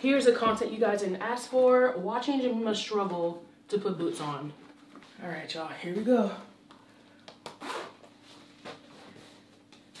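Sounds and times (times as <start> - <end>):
boot zipper being pulled up: 7.6 - 8.0.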